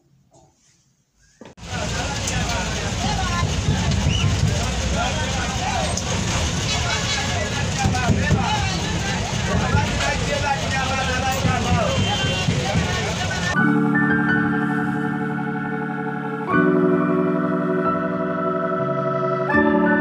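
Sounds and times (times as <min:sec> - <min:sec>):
bus engine and road rumble: 0:01.5 - 0:13.6
people talking: 0:01.6 - 0:13.7.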